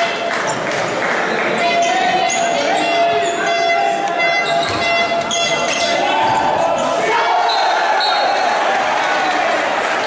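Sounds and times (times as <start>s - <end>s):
din of crowd voices: 0.0s - 10.0s
ball bouncing on wooden floor: 4.6s - 5.5s.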